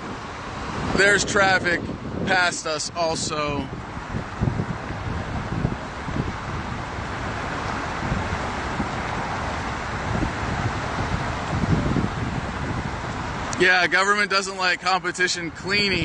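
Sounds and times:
wind buffeting microphone: 0.0s - 14.4s, 15.4s - 16.0s
highway traffic rushing: 0.0s - 16.0s.

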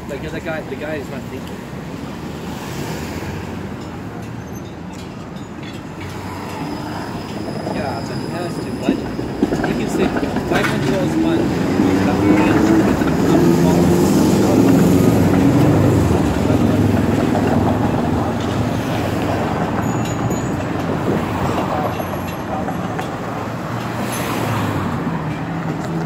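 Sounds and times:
street traffic noise: 0.0s - 26.0s
streetcar rolling on rails: 0.0s - 26.0s
streetcar motor hum: 3.5s - 26.0s.

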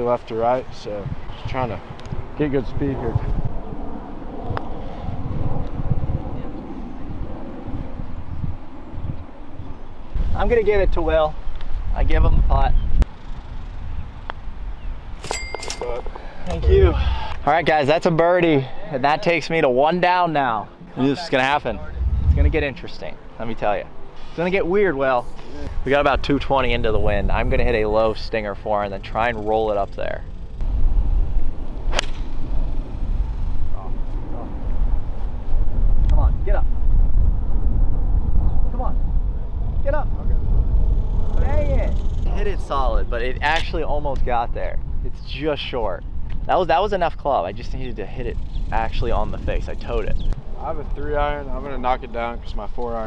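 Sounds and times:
wind rumbling on microphone: 0.0s - 17.8s, 20.6s - 23.9s, 24.6s - 53.0s
golf club striking ball: 31.9s - 32.4s.

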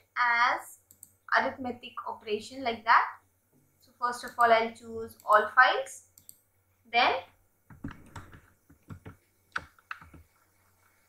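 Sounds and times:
keyboard typing clicks: 0.8s - 1.2s, 6.2s - 6.4s, 7.7s - 10.4s.

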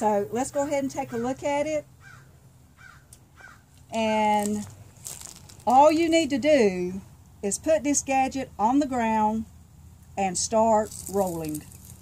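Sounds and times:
outdoor background noise: 0.0s - 12.0s
faint bird calls: 2.0s - 3.7s.

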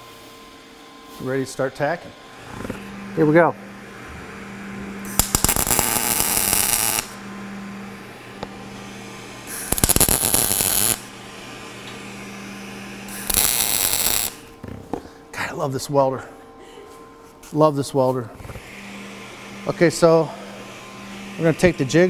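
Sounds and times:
steady low hum: 0.0s - 22.0s
welding arc crackling: 5.0s - 7.2s, 9.5s - 11.1s, 13.1s - 14.6s.

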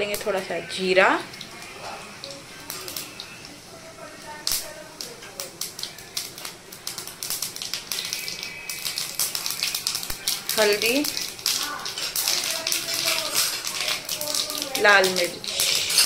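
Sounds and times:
seeds crackling in hot oil: 0.0s - 16.0s.

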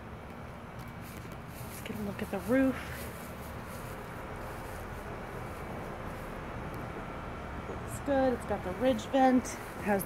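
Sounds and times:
low outdoor rumble and hiss: 0.0s - 10.0s.

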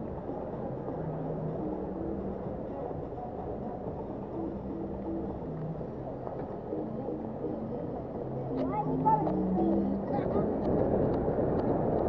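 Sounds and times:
low hums shifting in pitch: 0.6s - 2.9s, 3.6s - 11.0s.

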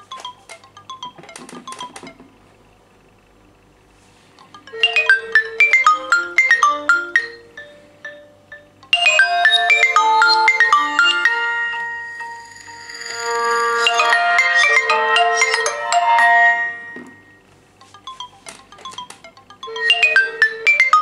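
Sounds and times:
phone ringtones chiming: 0.0s - 2.2s, 4.6s - 21.0s.

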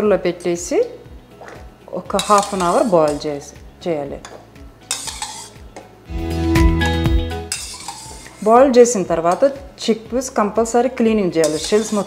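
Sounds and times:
metal spoon scraping steel bowl: 2.1s - 3.4s, 4.2s - 5.6s, 7.4s - 9.6s, 11.3s - 12.0s.

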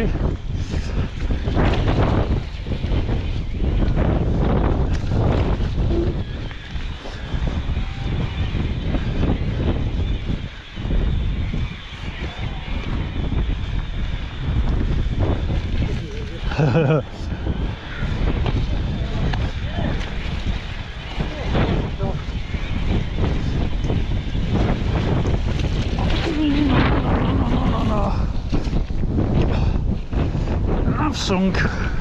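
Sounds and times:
wind buffeting microphone: 0.0s - 32.0s.

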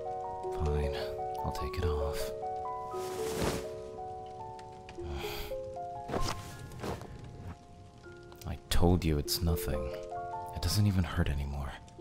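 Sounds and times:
soft piano music: 0.0s - 12.0s
cloth rustling: 2.7s - 4.6s, 6.0s - 7.7s.

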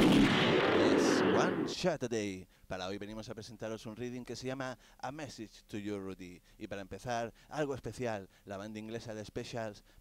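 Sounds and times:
loud explosion-like blast: 0.0s - 1.8s
man's voice: 0.7s - 9.9s.

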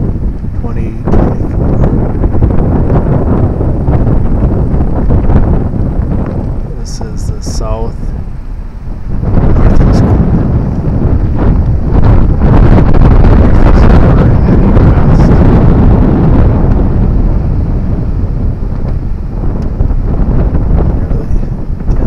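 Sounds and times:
wind buffeting microphone: 0.0s - 22.0s.

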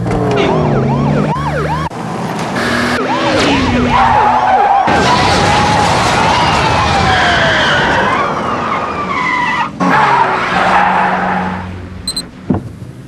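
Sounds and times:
road noise: 0.0s - 13.0s
car tyres skidding and screeching: 2.0s - 11.9s.

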